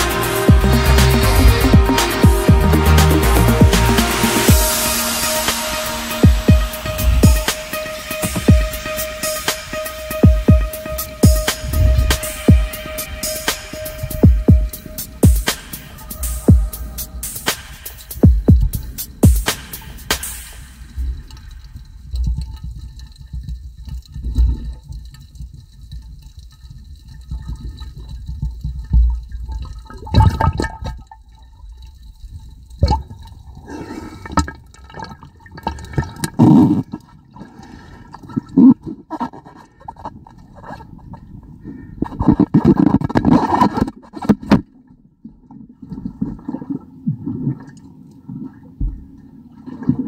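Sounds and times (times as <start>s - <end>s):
water splashing and sloshing: 0.0s - 50.0s
muffled underwater rumble: 11.6s - 12.2s.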